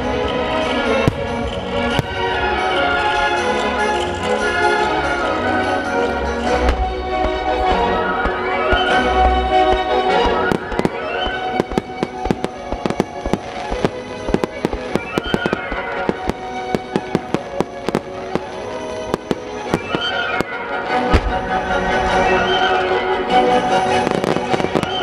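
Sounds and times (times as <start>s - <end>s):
music: 0.0s - 25.0s
firework shells bursting: 6.5s - 21.6s.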